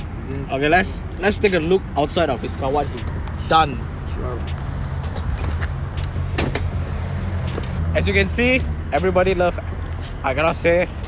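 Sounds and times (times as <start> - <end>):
car engine droning: 0.0 - 11.0.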